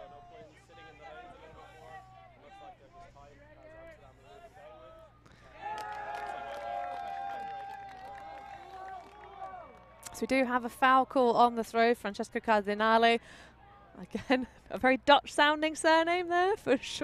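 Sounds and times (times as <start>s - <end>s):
players' voices: 0.0s - 6.9s
players shouting: 3.7s - 10.0s.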